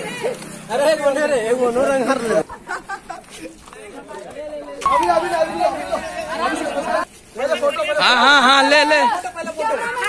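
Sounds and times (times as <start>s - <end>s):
men chattering and calling out: 0.6s - 10.0s.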